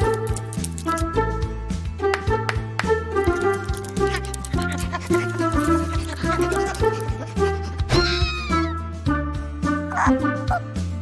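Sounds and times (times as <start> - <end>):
bouncy cartoon music: 0.0 - 11.0
squeaky cartoon sound sliding down: 7.9 - 8.8.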